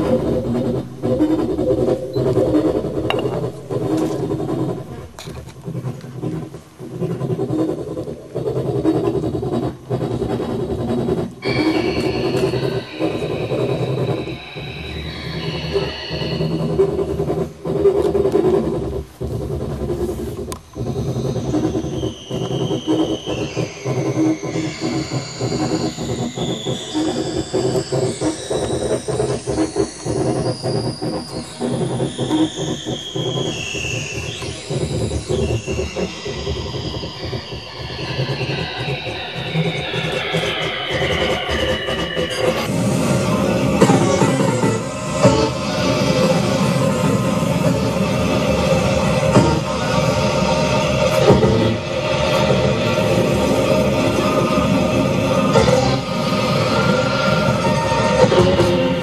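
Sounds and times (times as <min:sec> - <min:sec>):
low synthesizer drone: 0:00.0 - 0:59.0.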